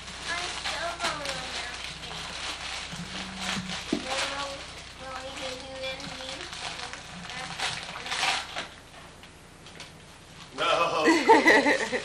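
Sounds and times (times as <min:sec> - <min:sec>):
rustling: 0:00.0 - 0:09.1
indistinct voices: 0:10.6 - 0:11.2.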